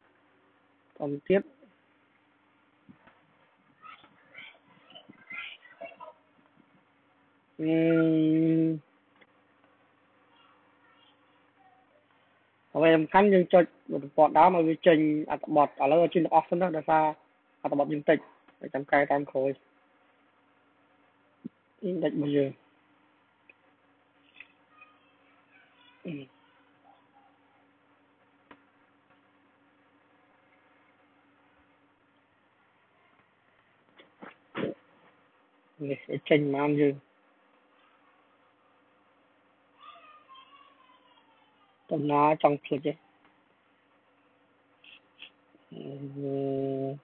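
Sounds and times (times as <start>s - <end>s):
faint steady hum: 0.0s - 47.0s.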